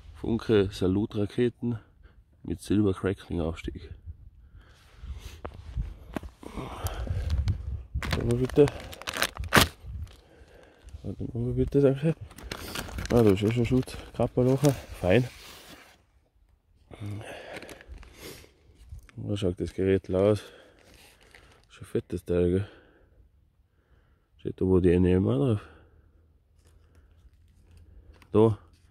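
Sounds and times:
camera handling rumble: 5.4s - 10.2s.

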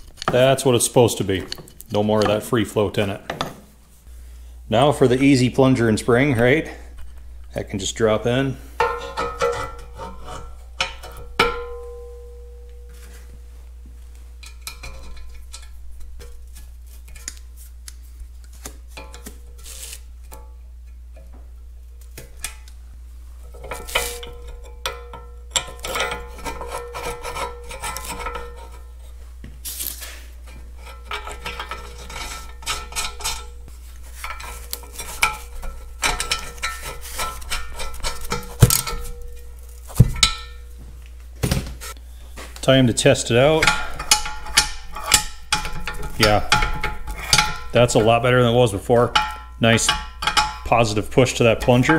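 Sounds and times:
metal parts clinking: 43.4s - 48.4s.

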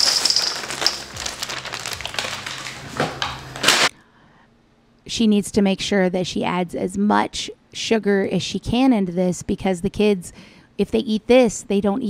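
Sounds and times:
cereal pouring into metal bowl: 0.0s - 2.9s
plastic bag crinkling: 0.0s - 3.9s.

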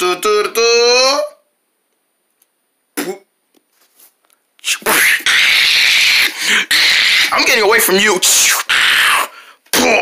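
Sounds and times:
child making hissing screeches: 4.6s - 7.4s.

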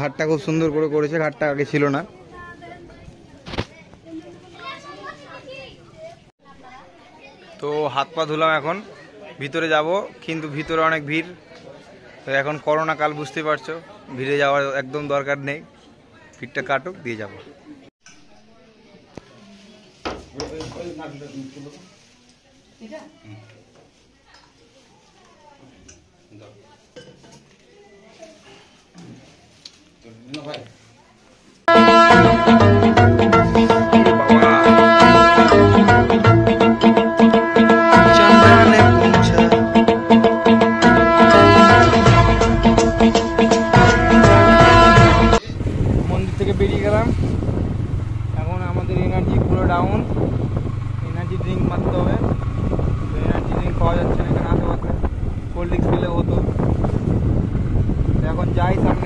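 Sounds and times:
man talking: 33.4s - 35.2s, 38.0s - 39.8s
motorbike engine running: 44.9s - 59.0s
wind buffeting microphone: 45.4s - 59.0s.

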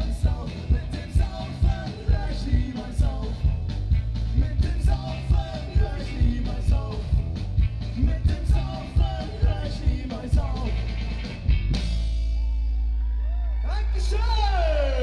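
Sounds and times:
person singing: 0.0s - 3.5s, 4.4s - 7.1s, 8.0s - 10.9s
ska-punk band playing live: 0.0s - 12.6s.

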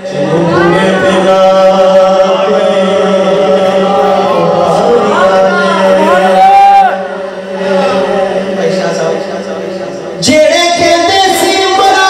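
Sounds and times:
man chanting into microphone: 0.0s - 6.4s, 7.2s - 12.0s.

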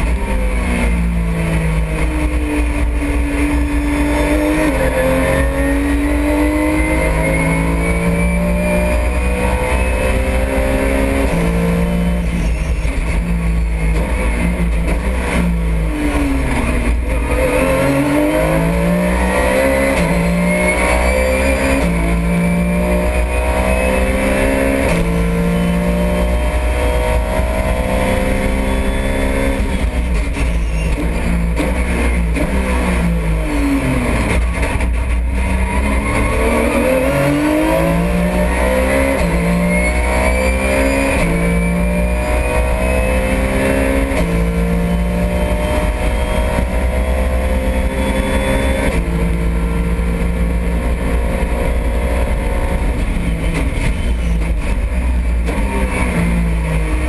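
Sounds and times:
race car engine upshifting: 0.0s - 57.0s.

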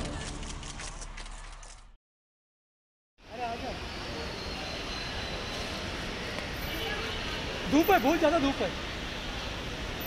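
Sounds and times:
traffic noise: 3.2s - 10.0s.

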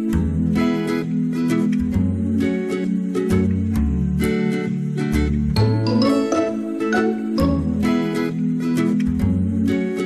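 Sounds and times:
acoustic guitar plucked notes: 0.0s - 10.0s.

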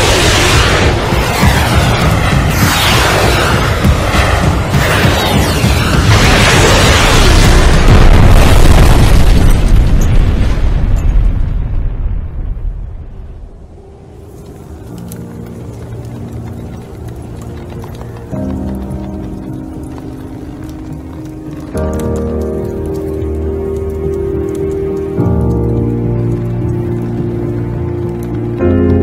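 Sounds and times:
rumbling explosion boom: 0.0s - 13.8s
background music of held notes: 15.0s - 29.0s.

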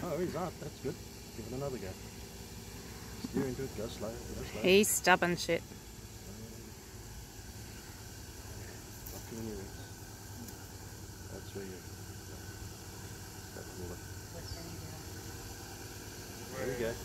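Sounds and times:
distant engine running low: 0.0s - 17.0s.

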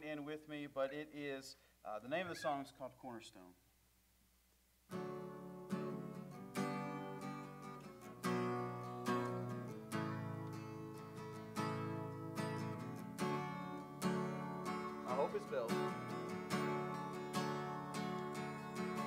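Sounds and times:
acoustic guitar strumming chords: 4.9s - 19.0s.

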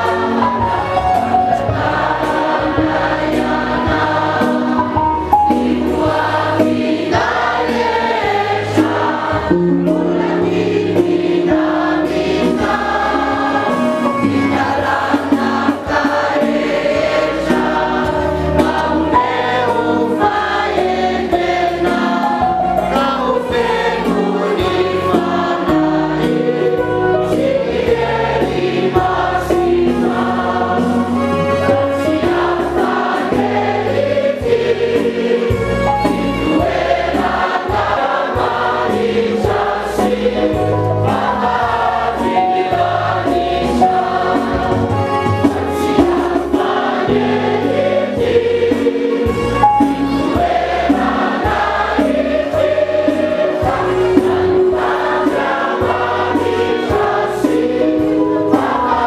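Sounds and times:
congregation singing a hymn: 0.0s - 59.0s
electronic keyboard accompaniment: 0.0s - 59.0s.

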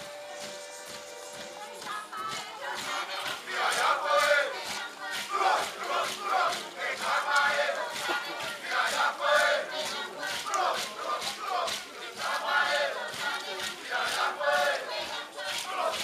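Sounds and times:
group chanting and shouting: 0.0s - 16.0s.

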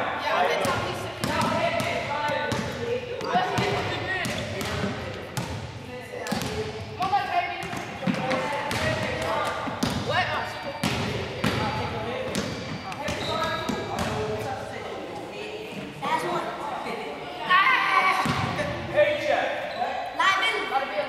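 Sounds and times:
young voices chattering: 0.0s - 21.0s
basketballs bouncing on wooden floor: 0.6s - 5.7s, 6.3s - 14.4s.

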